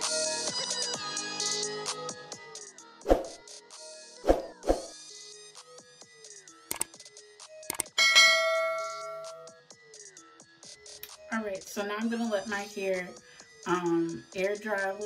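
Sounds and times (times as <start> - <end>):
click: 6.7 - 6.9, 7.7 - 7.9
bell-like notification chime: 8.0 - 9.5.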